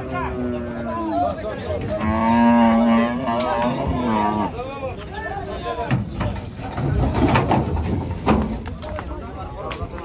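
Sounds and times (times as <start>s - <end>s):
cow mooing: 1.9s - 4.6s.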